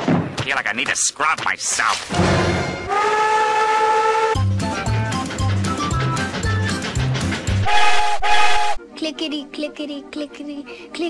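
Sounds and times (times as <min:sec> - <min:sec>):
steam whistle blowing: 0:02.9 - 0:04.4, 0:07.6 - 0:08.8.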